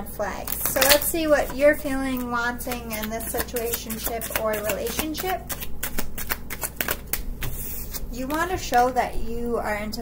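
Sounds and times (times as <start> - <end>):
cards being shuffled: 0.5 - 9.0.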